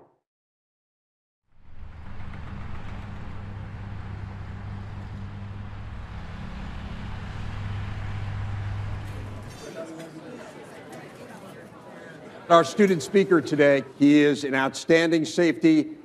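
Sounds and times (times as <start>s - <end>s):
low hum: 1.5s - 9.6s
street noise rumble: 1.5s - 10.4s.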